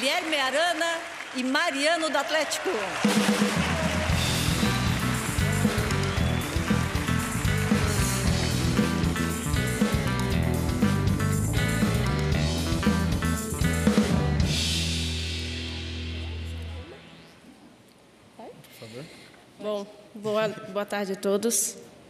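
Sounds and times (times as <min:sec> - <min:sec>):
live band playing upbeat music: 0:03.0 - 0:17.1
drum hits: 0:03.0 - 0:17.2.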